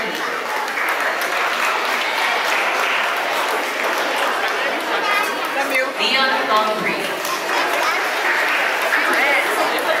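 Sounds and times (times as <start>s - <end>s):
audience applauding: 0.0s - 5.6s, 7.1s - 10.0s.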